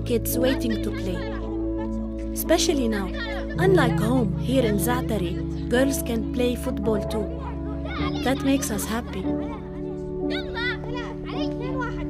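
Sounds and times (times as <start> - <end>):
background music with held notes: 0.0 - 12.0
children shouting at play: 0.5 - 2.2, 2.8 - 3.7, 7.2 - 12.0.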